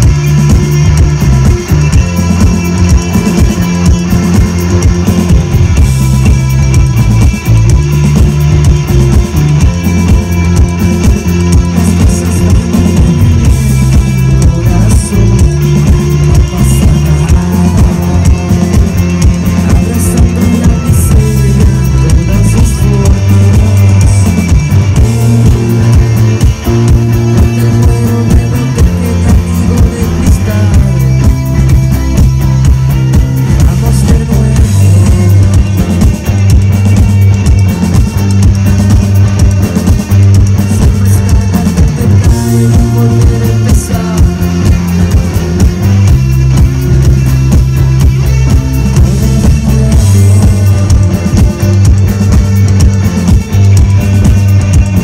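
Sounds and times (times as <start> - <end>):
drum kit steady beat: 0.0 - 55.0
rock band playing live: 0.0 - 55.0.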